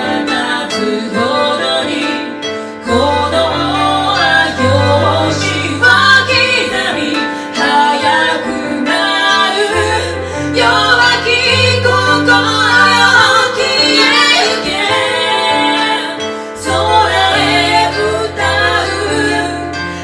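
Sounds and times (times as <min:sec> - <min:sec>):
koto plucked melody: 0:00.0 - 0:20.0.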